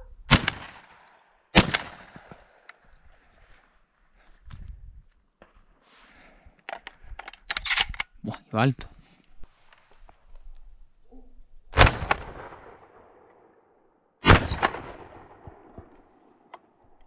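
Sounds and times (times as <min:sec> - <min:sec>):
shotgun shots: 0:00.3 - 0:02.4, 0:11.8 - 0:13.0, 0:14.2 - 0:15.7.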